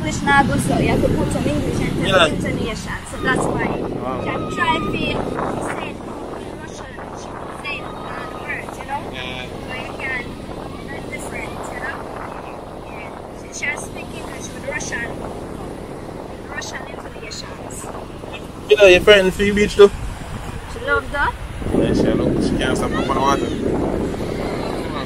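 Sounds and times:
small surf waves on sand: 0:00.0 - 0:25.0
wind rushing: 0:00.0 - 0:25.0.

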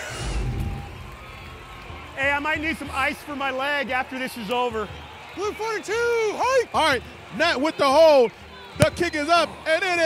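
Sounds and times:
whoosh with low boom: 0:00.0 - 0:02.1.

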